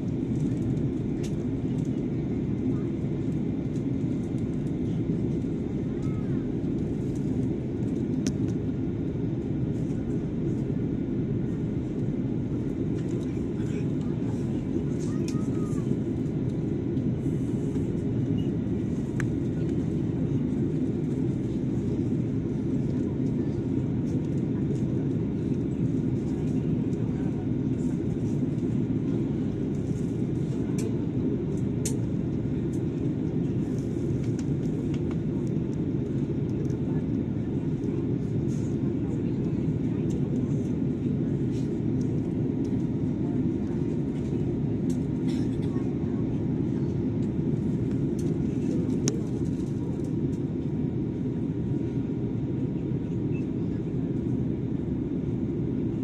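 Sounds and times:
airliner cabin rumble: 0.0s - 56.0s.

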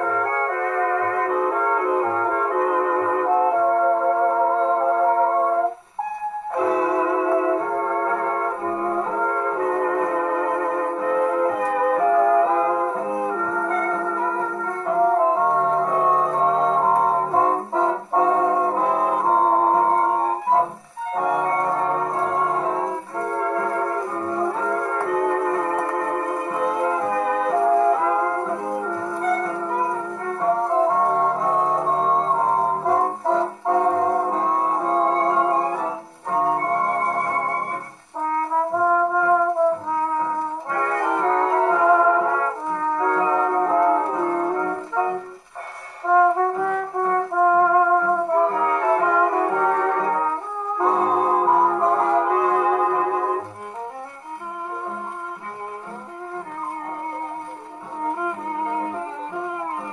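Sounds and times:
brass dance band on a gramophone: 0.0s - 59.9s.

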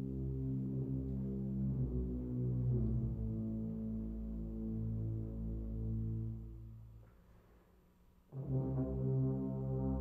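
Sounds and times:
tuba and euphonium low chord: 0.0s - 7.0s, 8.3s - 10.0s.

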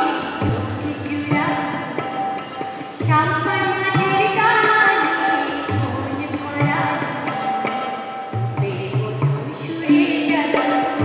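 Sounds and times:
tabla strokes: 0.0s - 11.0s.

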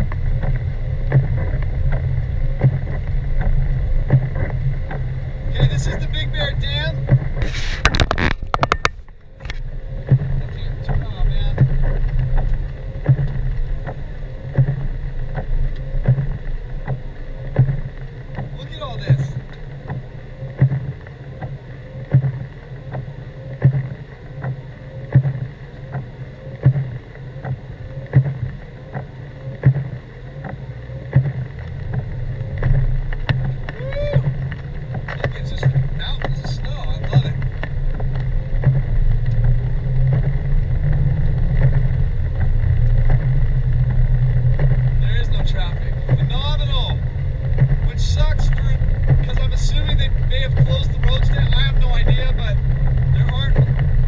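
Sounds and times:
car engine and tyres rumbling: 0.0s - 54.0s
windshield wipers sweeping: 0.0s - 54.0s.

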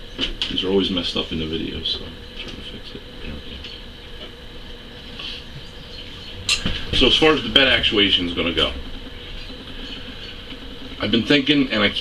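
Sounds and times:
low room rumble and hum: 0.0s - 12.0s.

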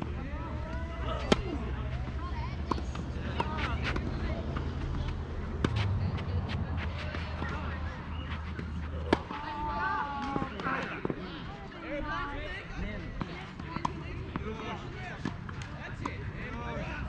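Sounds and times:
faint distant voices: 0.0s - 17.0s
tennis ball struck by racquets: 1.1s - 1.6s, 8.5s - 9.4s.

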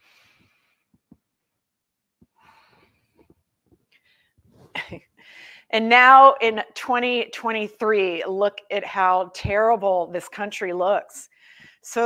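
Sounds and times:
woman breathing softly: 2.4s - 3.3s, 5.2s - 5.7s, 11.3s - 11.8s
woman laughing: 4.7s - 5.1s.

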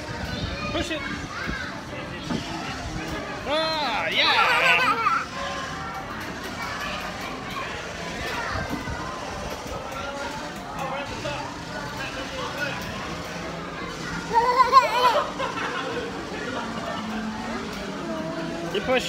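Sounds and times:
children's voices: 0.0s - 3.5s, 4.4s - 12.0s, 12.8s - 18.7s.

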